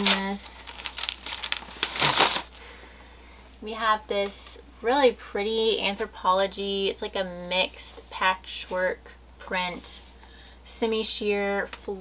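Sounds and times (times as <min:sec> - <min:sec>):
paper crinkling and rustling: 0:00.0 - 0:02.6.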